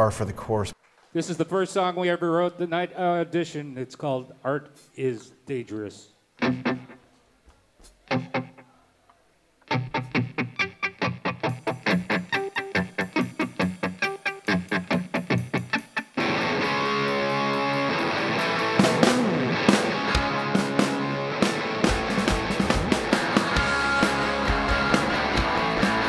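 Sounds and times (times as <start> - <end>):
electric guitar riff: 6.4 - 7.0, 8.1 - 8.7, 9.6 - 26.0
distorted punk rock band: 11.5 - 26.0.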